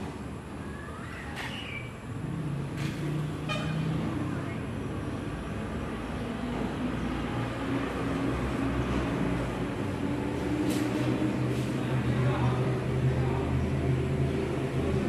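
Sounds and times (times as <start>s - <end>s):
road traffic: 0.0s - 15.0s
vehicle horn: 3.4s - 4.0s.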